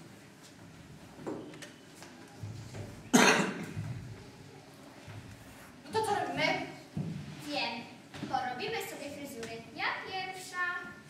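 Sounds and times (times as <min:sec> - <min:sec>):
person coughing: 0:03.1 - 0:03.8.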